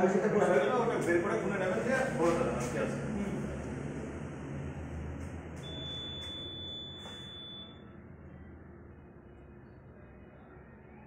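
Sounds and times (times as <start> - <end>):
long high-pitched beep: 5.6 - 7.9.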